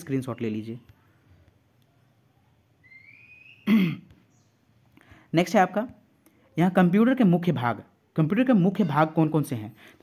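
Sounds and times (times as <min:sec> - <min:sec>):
man clearing throat: 0:03.7 - 0:04.1.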